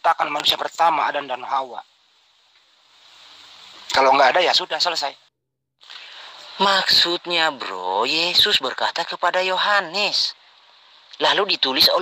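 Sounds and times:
man speaking: 0:00.0 - 0:01.8, 0:03.9 - 0:05.2, 0:06.4 - 0:10.4, 0:11.2 - 0:12.0
faint hiss: 0:00.0 - 0:12.0.

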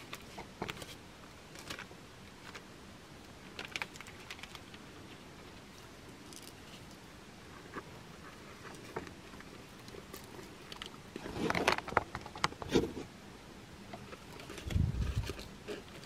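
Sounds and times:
crackling rustle of dried twigs: 0:00.0 - 0:12.6, 0:13.9 - 0:16.0.

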